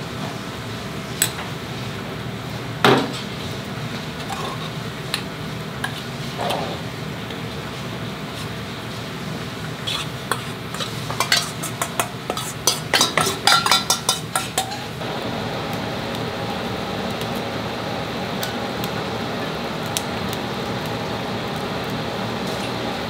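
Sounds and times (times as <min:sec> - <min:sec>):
soup simmering hiss: 0:00.0 - 0:23.0
metal spoon scraping bowl: 0:09.8 - 0:14.9.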